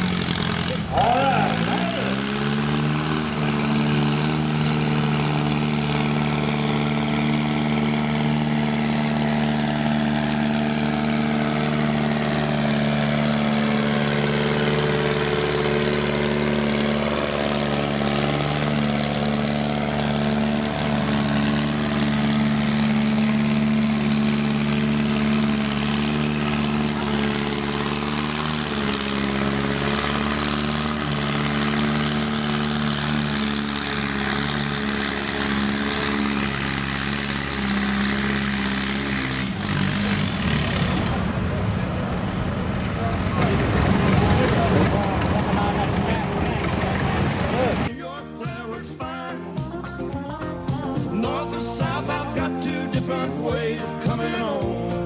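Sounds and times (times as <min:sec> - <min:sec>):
tractor engine running flat out: 0:00.0 - 0:55.0.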